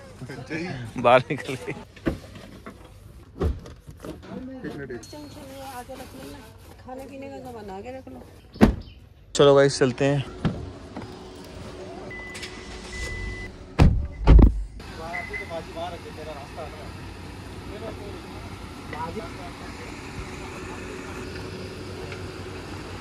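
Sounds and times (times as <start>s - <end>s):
car door thumps: 8.6s - 8.9s, 13.7s - 14.8s
car engine humming: 9.4s - 23.0s.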